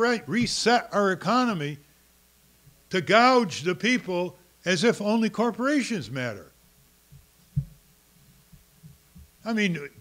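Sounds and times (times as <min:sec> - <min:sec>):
faint low hum: 0:00.0 - 0:10.0
low thumps: 0:07.1 - 0:09.4.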